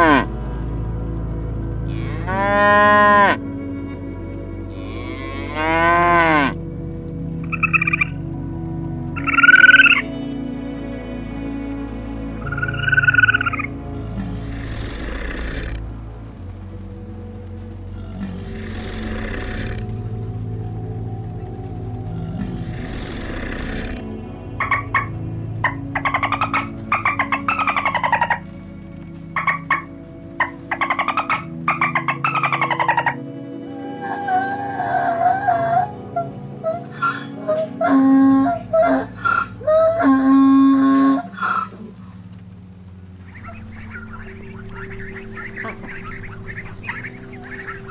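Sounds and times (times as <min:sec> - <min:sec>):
soft background music: 0:00.0 - 0:47.9
rapid pulsed trilling calls: 0:07.3 - 0:17.1, 0:17.8 - 0:34.6, 0:43.2 - 0:47.9
hissing bursts: 0:12.6 - 0:15.9, 0:18.0 - 0:20.0, 0:22.1 - 0:24.2.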